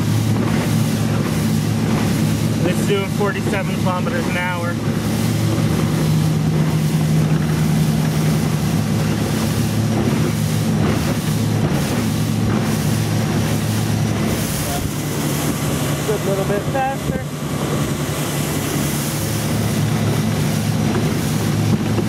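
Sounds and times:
electric boat motor humming: 0.0 - 22.0
water rushing against hull: 0.0 - 22.0.

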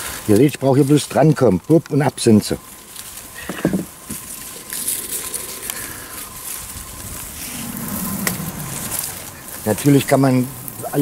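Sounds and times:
leaves and twigs rustling: 0.0 - 11.0.

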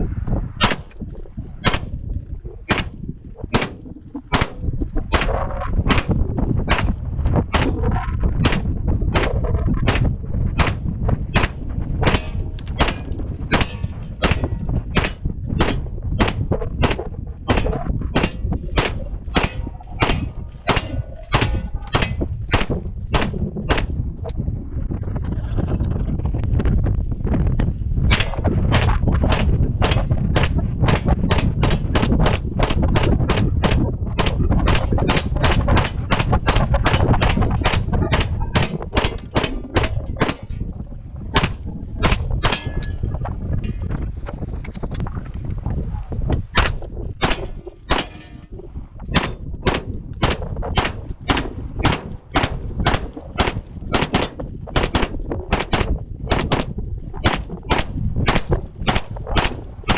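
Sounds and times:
steady low rumble: 0.0 - 59.9
gunshots: 0.6 - 1.0, 1.6 - 2.0, 2.7 - 7.8, 8.4 - 24.0, 28.1 - 40.6, 41.3 - 43.0, 46.6 - 48.3, 49.1 - 59.9.

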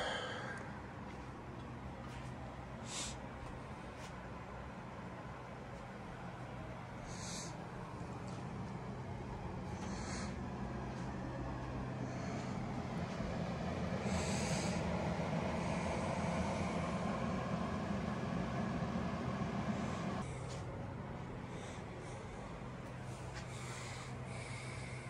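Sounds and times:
steady rushing hum: 0.0 - 25.0.

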